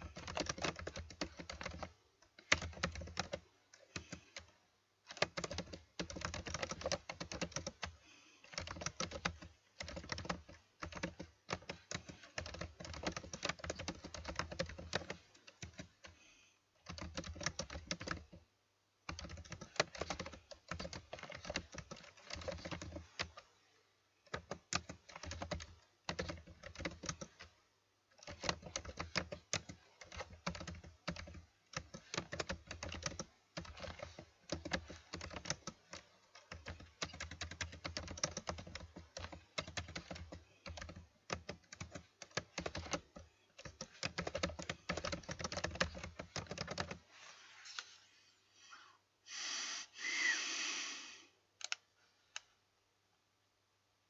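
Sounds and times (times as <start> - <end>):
typing on computer keyboard: 0.0 - 23.5, 24.2 - 47.0, 51.6 - 51.8.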